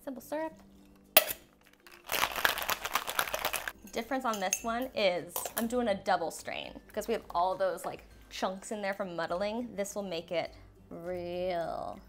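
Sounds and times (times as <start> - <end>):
ice rattling in cocktail shaker: 1.6 - 3.8.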